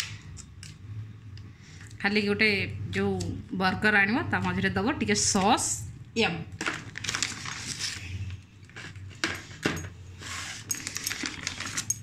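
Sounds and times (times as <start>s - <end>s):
packaging rustling: 6.6s - 9.2s.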